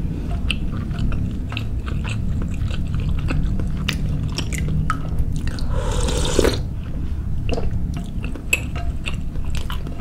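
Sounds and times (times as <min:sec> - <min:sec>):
close-miked chewing: 0:00.2 - 0:10.0.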